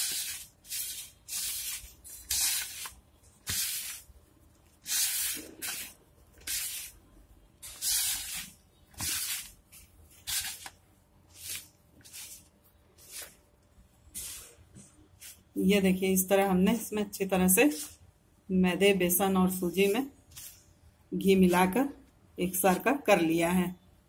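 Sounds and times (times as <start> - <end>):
hands rubbing flour in bowl: 0.0 - 7.0, 7.6 - 13.4, 17.6 - 18.0.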